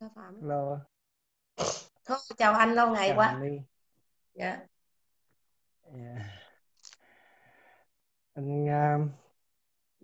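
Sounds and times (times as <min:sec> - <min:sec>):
woman speaking: 0:02.1 - 0:03.4.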